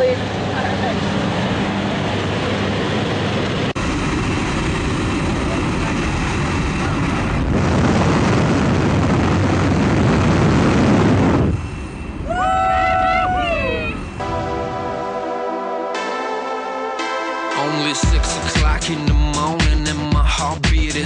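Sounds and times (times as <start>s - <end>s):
plane engine and propeller: 0.0s - 19.1s
wind rushing: 0.2s - 16.1s.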